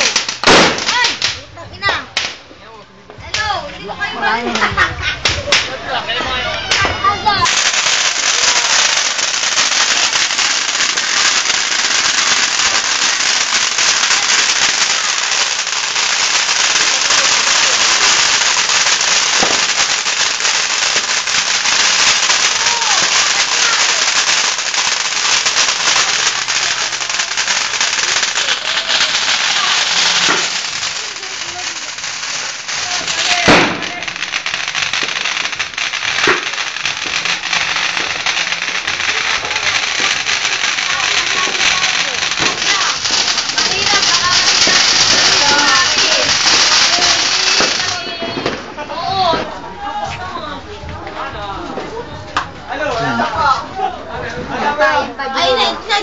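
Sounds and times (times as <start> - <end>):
loud firecracker bang: 0.0 - 2.4, 4.6 - 49.5
firecrackers crackling: 0.0 - 56.0.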